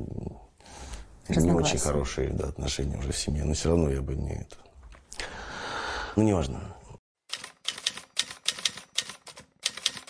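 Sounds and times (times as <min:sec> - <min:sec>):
typewriter key clicks: 0:07.3 - 0:10.0.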